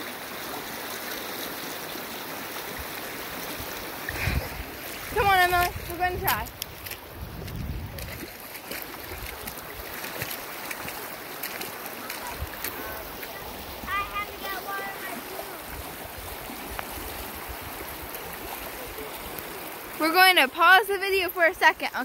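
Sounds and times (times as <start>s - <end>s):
stream running over pebbles: 0.0s - 22.0s.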